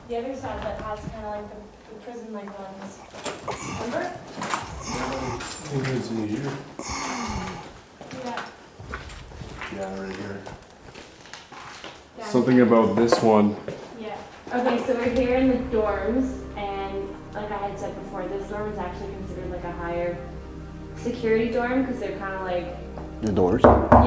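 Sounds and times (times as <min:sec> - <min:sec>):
people talking: 0:00.0 - 0:03.0, 0:03.6 - 0:04.2, 0:04.8 - 0:06.6, 0:12.2 - 0:20.3, 0:21.0 - 0:24.0
footsteps on hard floor: 0:12.9 - 0:15.3, 0:22.9 - 0:23.2.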